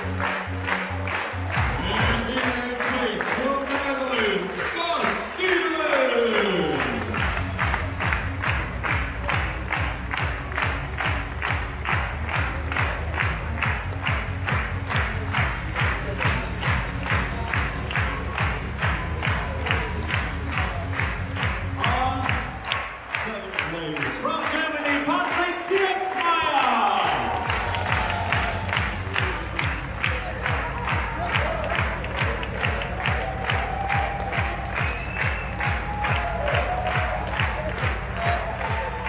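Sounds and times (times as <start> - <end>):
music with steady beat: 0.0 - 4.5, 5.6 - 23.1, 27.0 - 39.0
people clapping in time: 0.0 - 39.0.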